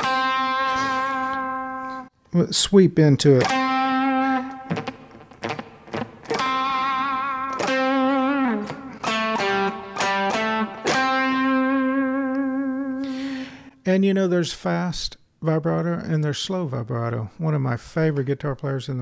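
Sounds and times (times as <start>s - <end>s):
electric guitar lead with vibrato: 0.0s - 2.1s, 3.4s - 13.7s.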